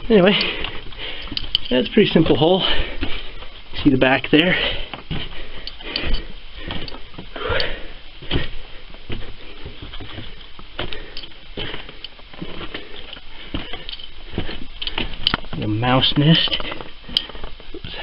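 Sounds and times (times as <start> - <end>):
scuffs scrapes and knocks: 8.2 - 18.0.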